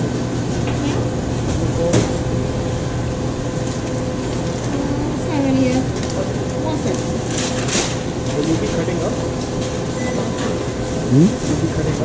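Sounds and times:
kitchen equipment and ventilation hum: 0.0s - 12.0s.

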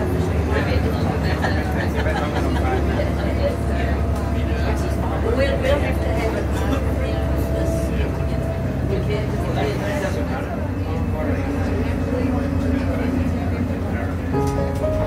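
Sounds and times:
bus engine and road noise: 0.0s - 15.0s
people talking indistinctly: 0.0s - 15.0s.

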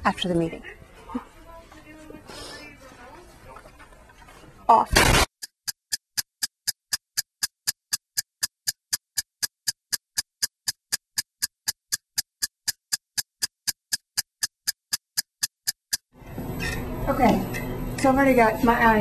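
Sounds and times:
clock ticking: 5.2s - 16.2s.

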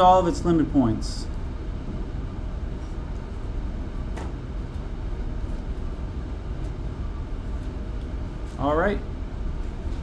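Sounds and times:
low ventilation rumble: 0.0s - 10.0s.

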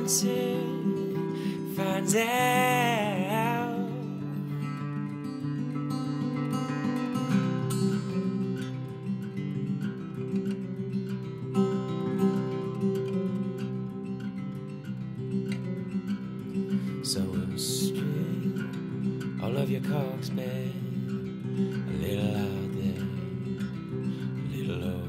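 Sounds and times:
fingerstyle acoustic guitar: 0.0s - 25.0s.

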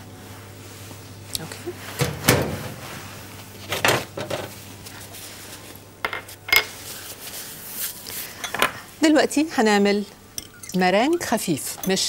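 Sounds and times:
bowls and utensils clinking: 6.1s - 6.8s, 10.4s - 12.0s.

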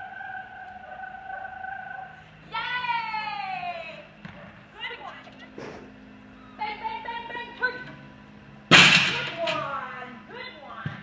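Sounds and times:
voice holding long high note: 0.0s - 2.3s.

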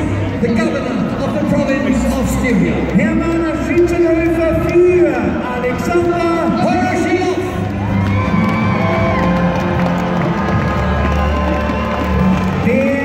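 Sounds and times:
crowd cheering and shouting: 0.0s - 13.0s
music playing: 0.0s - 13.0s.

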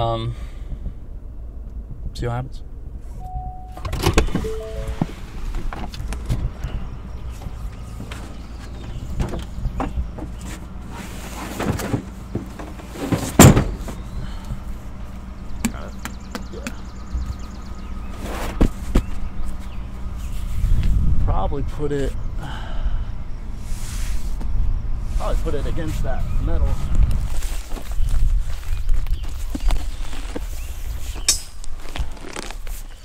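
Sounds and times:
background music: 4.4s - 5.2s
foam target thumping on metal tailgate: 13.1s - 13.9s.

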